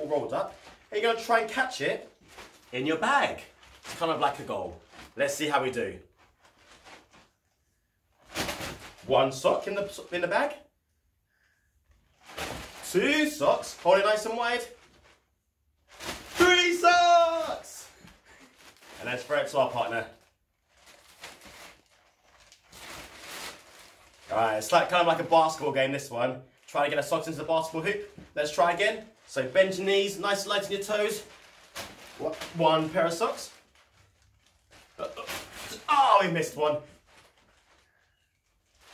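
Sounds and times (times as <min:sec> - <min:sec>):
plastic bag rustling: 0:00.0 - 0:07.5, 0:08.1 - 0:10.4, 0:12.0 - 0:25.8, 0:26.5 - 0:38.9.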